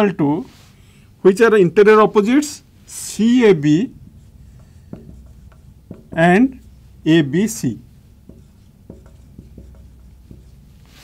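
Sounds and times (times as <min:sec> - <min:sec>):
marker writing on whiteboard: 0:03.0 - 0:11.0.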